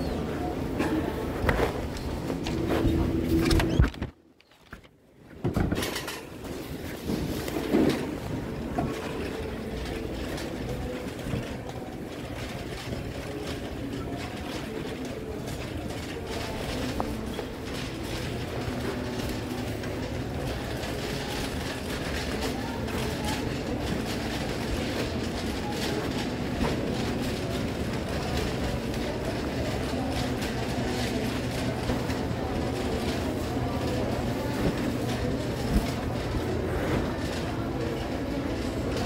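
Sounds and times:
shopping cart rolling and rattling: 0.0 - 3.8, 5.6 - 39.0.

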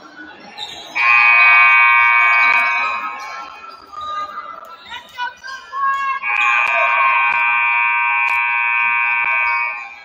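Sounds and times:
scoreboard horn blaring: 1.0 - 3.2, 6.2 - 10.0.

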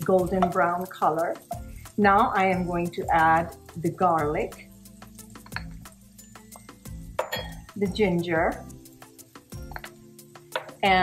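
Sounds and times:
spatula clinking on glass bowl: 5.3 - 7.8.

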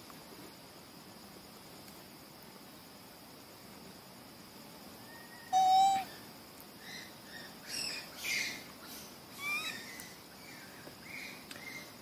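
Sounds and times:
loud steady animal call: 5.4 - 6.1
high chirps: 5.5 - 6.1.

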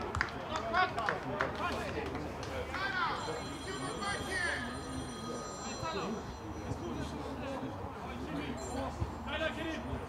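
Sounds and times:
high-pitched electronic tone: 3.2 - 8.9.

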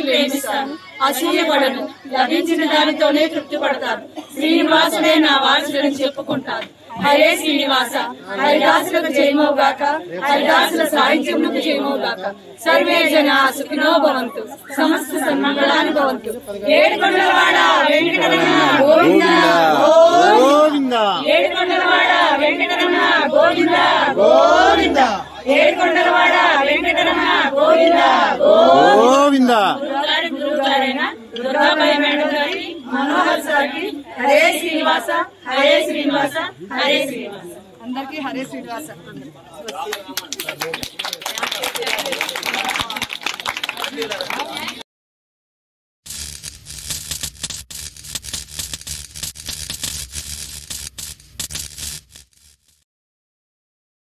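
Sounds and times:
women chanting together: 0.0 - 38.8
fire crackling and sparks: 46.1 - 52.8.

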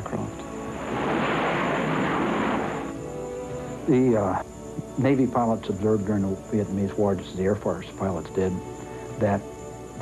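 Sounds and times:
jet engine roar: 0.2 - 3.8.

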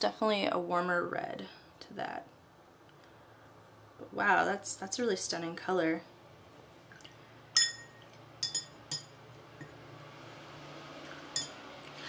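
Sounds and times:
brush clinking against glass: 7.6 - 9.2.

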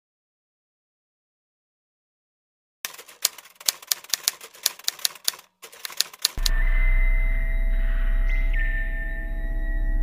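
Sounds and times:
typewriter key clicks: 2.9 - 6.5
electronic music: 6.4 - 10.0.

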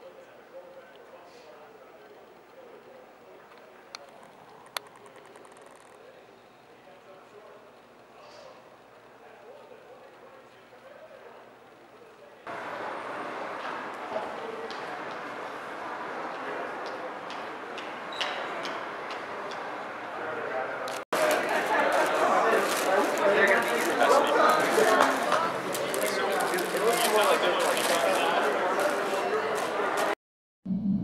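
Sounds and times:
faint background murmur: 0.0 - 30.2
sharp clicks: 4.0 - 6.0.

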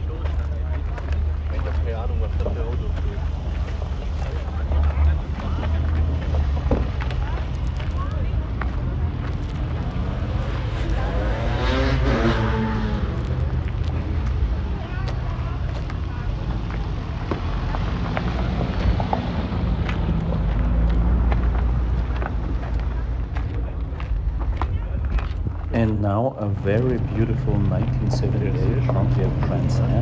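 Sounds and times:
background voices: 0.0 - 30.0.

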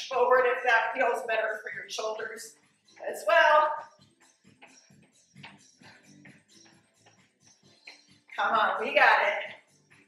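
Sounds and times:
faint background music: 0.0 - 10.0
soft ticking beat: 4.0 - 8.4.

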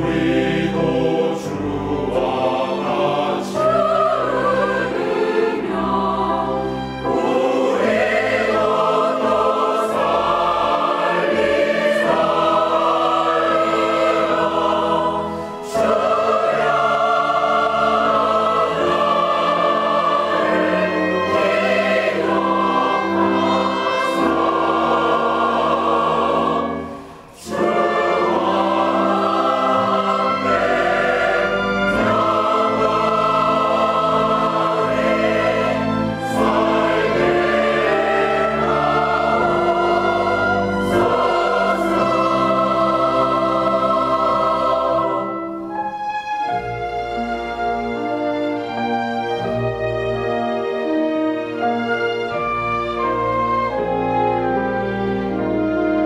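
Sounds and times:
mixed choir singing a hymn: 0.0 - 56.0
orchestral accompaniment: 0.0 - 56.0.

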